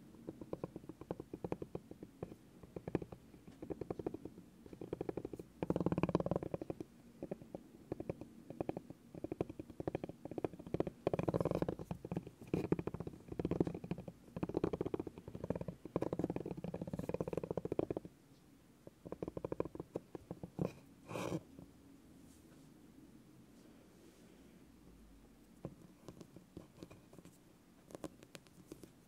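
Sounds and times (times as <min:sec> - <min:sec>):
massage ball tapping on bamboo board: 0:00.0 - 0:18.1.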